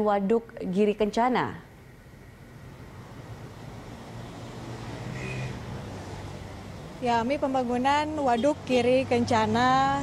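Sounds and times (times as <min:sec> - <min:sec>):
motorcycle engines passing: 0:02.8 - 0:10.0.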